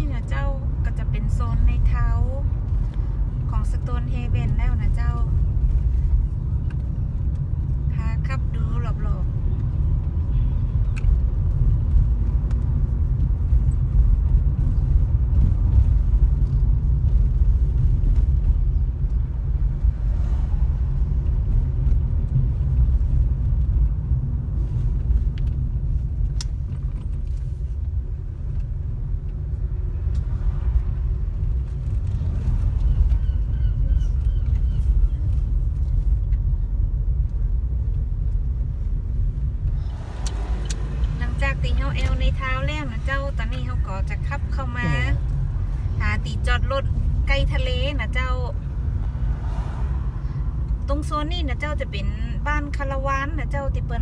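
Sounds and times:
car engine and tyres rumbling: 0:00.0 - 0:54.0.

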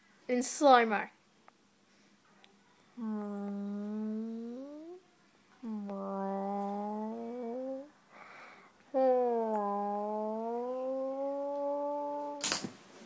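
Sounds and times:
breath: 0:01.9 - 0:02.2, 0:08.1 - 0:08.8
person humming: 0:03.0 - 0:05.0, 0:05.6 - 0:12.6.

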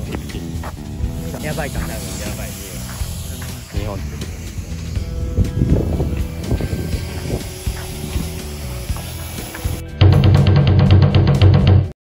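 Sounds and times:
voices talking: 0:00.0 - 0:05.1
background music: 0:00.0 - 0:12.0.

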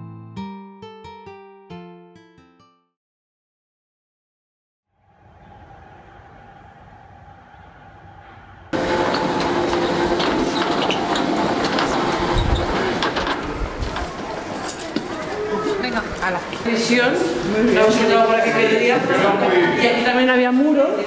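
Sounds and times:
street traffic: 0:05.1 - 0:17.6
people talking: 0:11.8 - 0:21.0.

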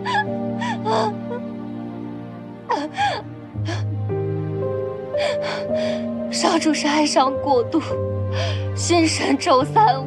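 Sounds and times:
woman sobbing: 0:00.0 - 0:01.5, 0:02.7 - 0:03.9
slow background music: 0:00.0 - 0:10.0.

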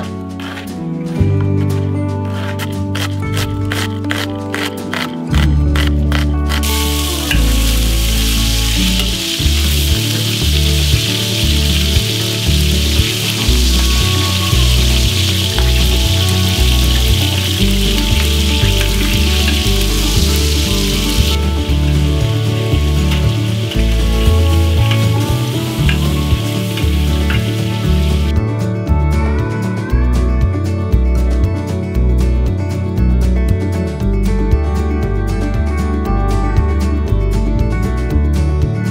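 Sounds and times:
background music with a beat: 0:00.0 - 0:38.9
meat sizzling in a pan: 0:06.6 - 0:28.3.

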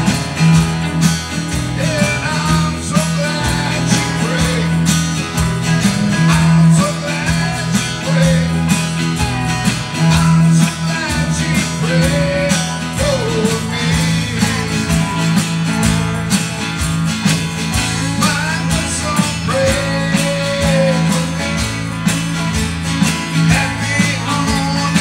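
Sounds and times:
live band playing gospel music: 0:00.0 - 0:25.0.

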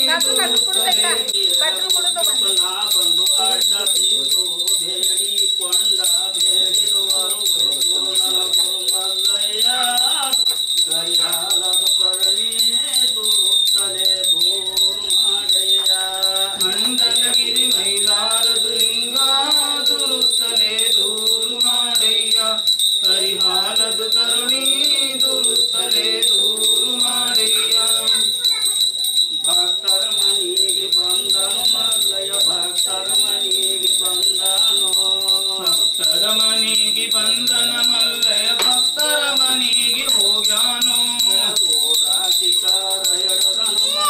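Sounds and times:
hand bells jingling: 0:00.0 - 0:44.0.

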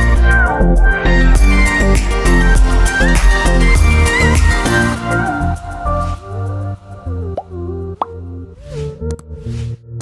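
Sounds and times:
background music with sustained notes: 0:00.0 - 0:10.0
rising pop sound effects: 0:07.3 - 0:09.2.

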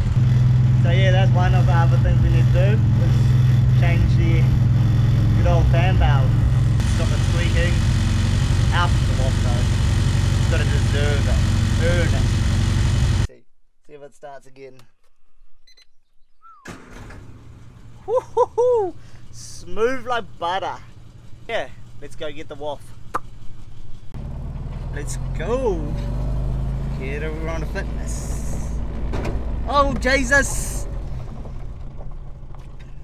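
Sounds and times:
car engine idling: 0:00.0 - 0:13.3, 0:16.7 - 0:33.0
car engine starting: 0:00.0 - 0:13.3, 0:16.7 - 0:33.0.

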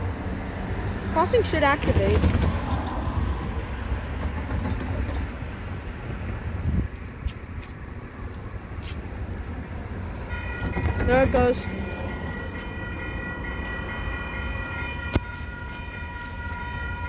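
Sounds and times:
diesel locomotive rumble: 0:00.0 - 0:17.0.

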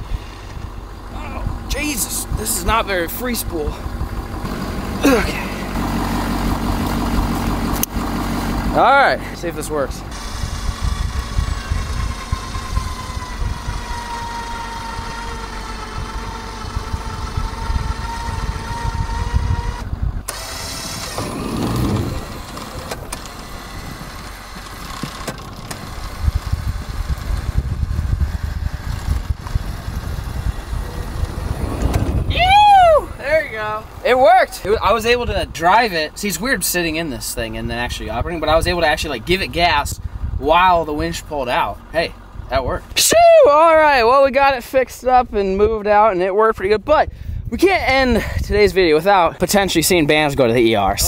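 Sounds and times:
golf cart rumbling: 0:00.0 - 0:51.0
low wind rumble: 0:00.0 - 0:51.0
person shouting: 0:01.1 - 0:02.0, 0:05.0 - 0:05.7, 0:32.3 - 0:33.8, 0:43.0 - 0:44.0
electric winch motor whining: 0:10.0 - 0:33.2.

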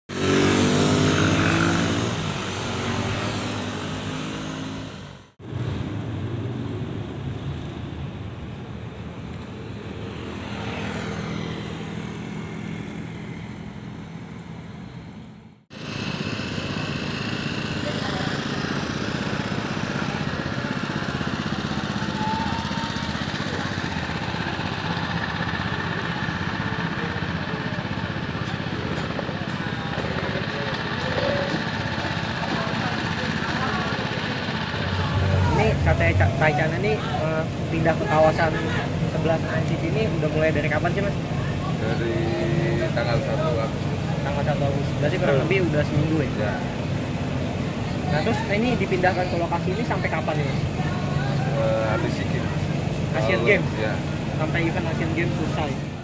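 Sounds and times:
loud pitched engine: 0:00.1 - 0:08.8, 0:09.7 - 0:56.0
motorcycle and traffic engines: 0:00.1 - 0:56.0.

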